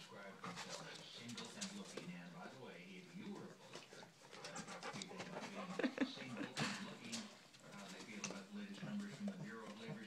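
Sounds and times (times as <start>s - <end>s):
faint puppy vocal sounds: 0.0s - 10.0s
paws clicking on newspaper: 0.0s - 10.0s.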